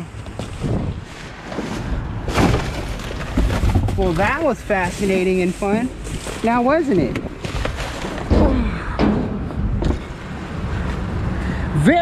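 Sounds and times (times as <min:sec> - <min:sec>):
rummaging in metal dumpster: 0:00.4 - 0:10.2
low thuds: 0:07.1 - 0:10.2.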